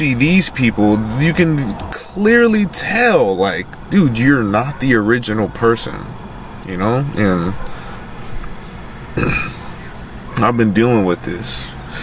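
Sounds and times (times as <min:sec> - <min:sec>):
man burping: 0:09.2 - 0:09.7.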